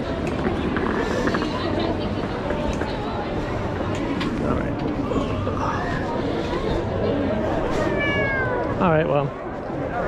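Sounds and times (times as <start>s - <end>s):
cat meowing: 7.8s - 8.7s.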